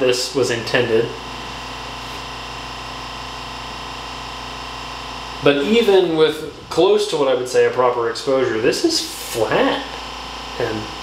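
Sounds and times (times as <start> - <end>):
steady machine hum: 0.0 - 11.0.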